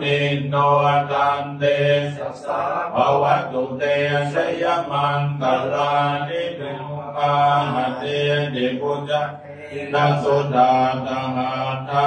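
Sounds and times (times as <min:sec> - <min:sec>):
group chanting in unison: 0:00.0 - 0:12.0.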